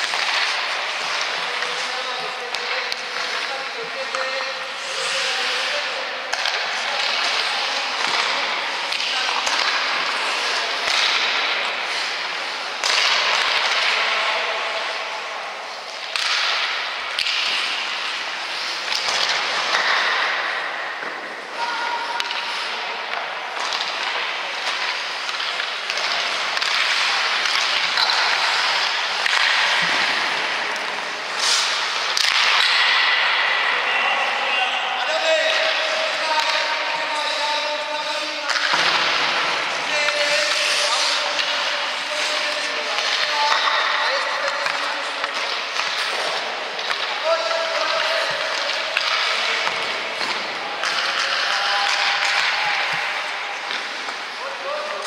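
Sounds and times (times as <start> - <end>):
echoing indistinct voices: 0.0 - 55.0
skates scraping on ice: 0.0 - 55.0.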